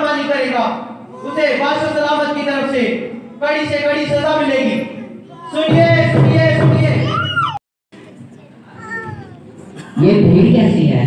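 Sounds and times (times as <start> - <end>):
murmur of a hall: 0.0 - 11.0.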